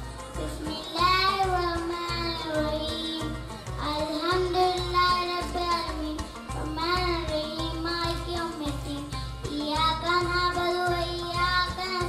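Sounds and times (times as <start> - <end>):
child singing devotional song: 0.3 - 12.0.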